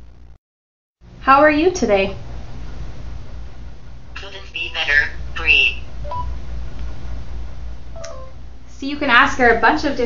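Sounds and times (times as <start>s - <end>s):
steady low hum: 0.0s - 0.4s, 1.0s - 10.0s.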